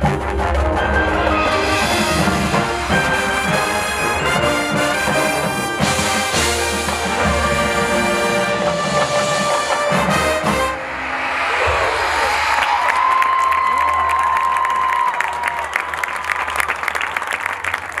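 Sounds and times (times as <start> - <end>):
marching band brass chord: 0.0 - 12.5
crowd cheering and whooping: 11.2 - 18.0
applause: 12.5 - 18.0.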